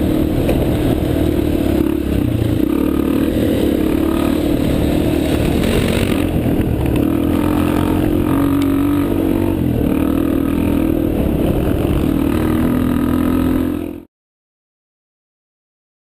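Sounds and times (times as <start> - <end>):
motorcycle engine running: 0.0 - 14.1
wind noise on microphone: 3.3 - 13.6.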